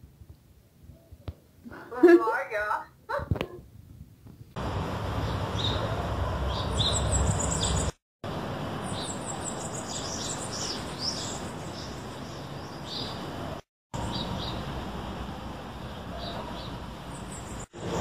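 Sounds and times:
low outdoor rumble: 0:04.6 - 0:08.9
small birds chirping: 0:05.2 - 0:08.0, 0:08.8 - 0:13.4, 0:14.0 - 0:14.7, 0:15.9 - 0:18.0.

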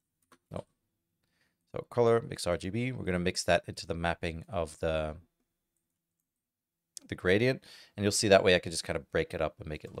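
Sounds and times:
man speaking: 0:01.7 - 0:05.2.

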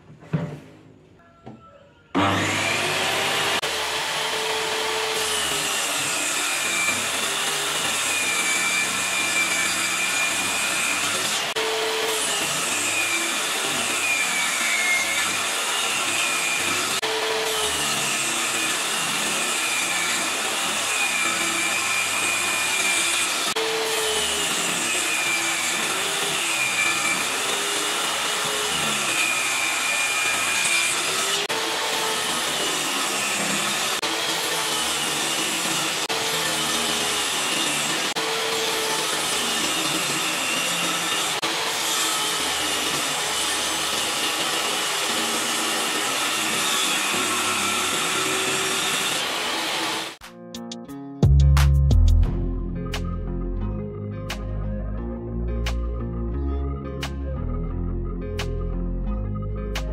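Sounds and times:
table saw cutting plywood: 0:02.2 - 0:50.2.

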